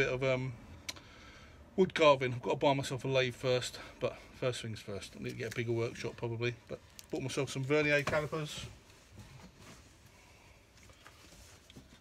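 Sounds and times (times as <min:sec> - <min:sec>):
faint packaging rustling: 0:04.8 - 0:12.0.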